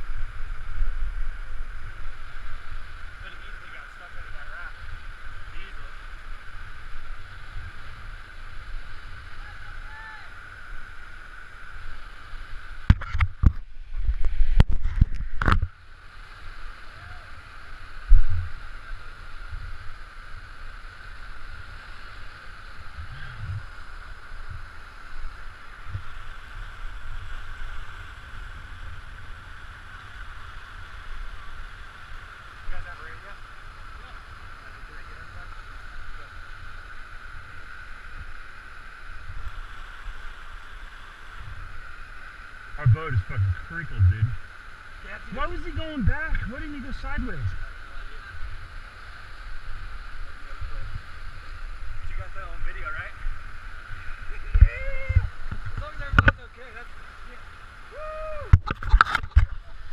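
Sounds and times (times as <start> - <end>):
creek rapids rushing: 0.0 - 59.9
bumps on microphone: 42.8 - 44.4.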